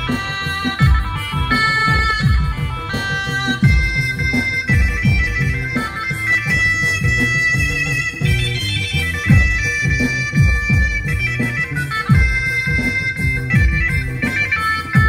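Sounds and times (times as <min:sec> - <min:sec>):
electric guitar accompaniment: 0:00.0 - 0:15.0
electronic keyboard melody: 0:00.0 - 0:15.0
steady beat and bass line: 0:00.0 - 0:15.0.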